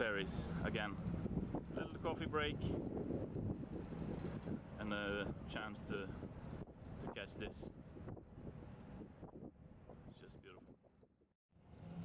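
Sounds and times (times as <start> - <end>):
wind on microphone: 0.0 - 11.2.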